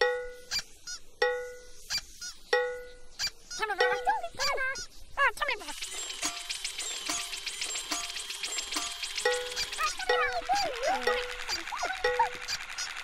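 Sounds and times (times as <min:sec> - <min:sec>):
squeaky warbling calls: 0:00.0 - 0:13.0.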